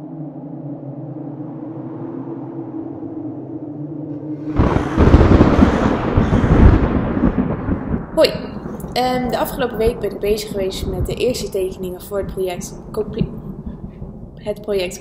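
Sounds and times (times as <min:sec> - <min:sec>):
low droning tone: 0:00.0 - 0:14.9
loud rough rumbling noise: 0:00.0 - 0:15.0.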